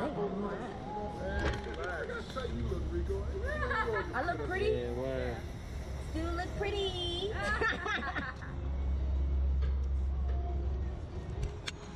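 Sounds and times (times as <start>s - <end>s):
faint background noise: 0.0s - 11.9s.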